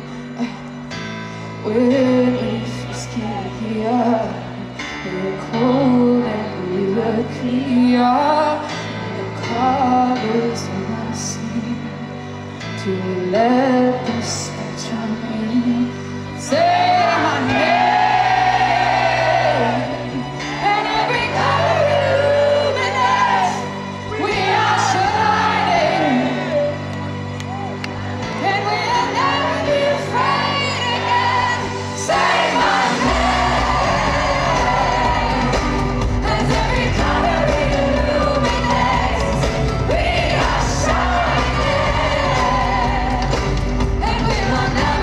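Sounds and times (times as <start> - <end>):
live indie pop band: 0.0 - 45.0
crowd yelling and whooping: 16.5 - 20.1, 21.3 - 28.4, 29.2 - 39.6.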